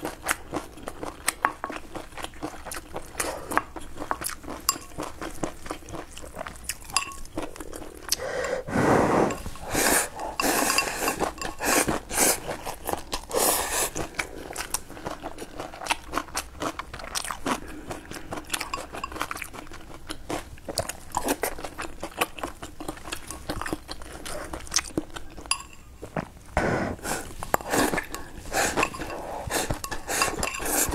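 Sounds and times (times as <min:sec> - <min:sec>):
chewing mouth sounds: 0:00.0 - 0:08.5, 0:09.3 - 0:26.4, 0:27.1 - 0:30.9.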